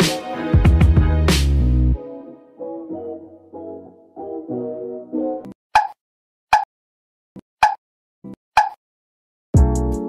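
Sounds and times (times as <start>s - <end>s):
background music: 0.0s - 5.5s, 9.6s - 10.0s
sharp pop sound effects: 5.8s - 6.7s, 8.6s - 8.8s.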